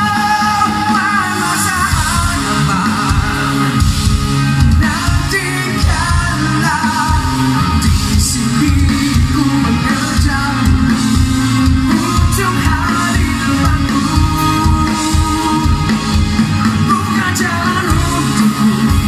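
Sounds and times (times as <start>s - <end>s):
bass guitar: 0.0s - 19.0s
drum kit: 0.0s - 19.0s
electric guitar: 0.0s - 19.0s
male lead vocal singing: 0.0s - 19.0s.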